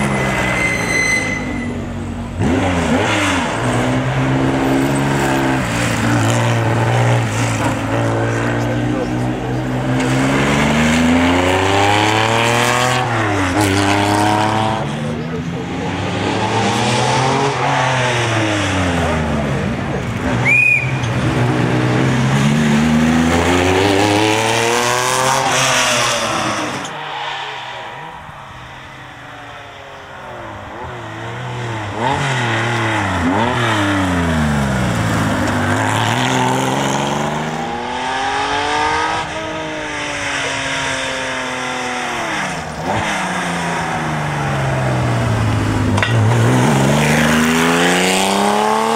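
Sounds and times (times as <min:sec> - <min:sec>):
car engine revving hard: 0:02.2 - 0:20.4, 0:21.1 - 0:48.9.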